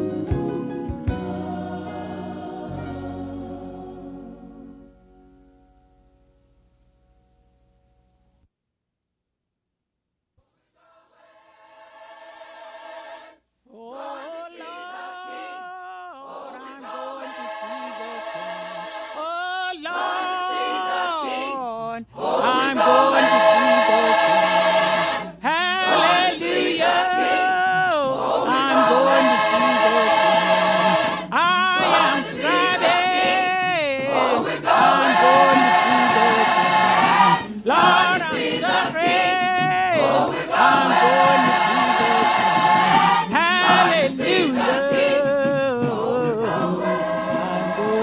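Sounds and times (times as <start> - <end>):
gospel choir singing: 0.0 - 4.9, 10.8 - 48.0.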